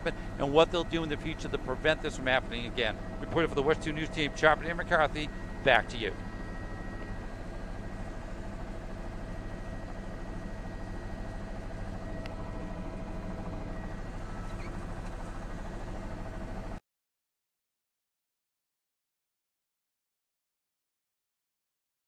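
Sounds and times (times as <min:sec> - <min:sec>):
helicopter engine and rotor drone: 0:00.0 - 0:16.8.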